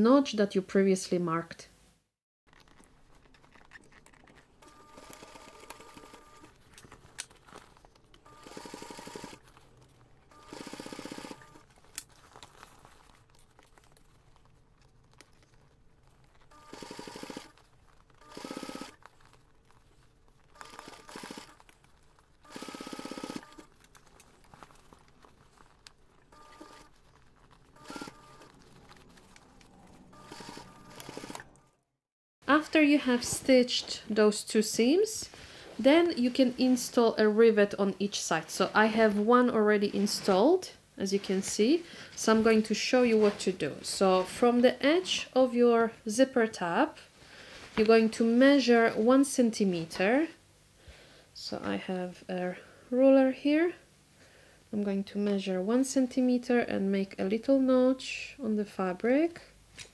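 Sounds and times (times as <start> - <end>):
sewing machine stitching: 8.2 - 9.5, 10.3 - 11.6, 16.5 - 17.6, 20.6 - 21.6.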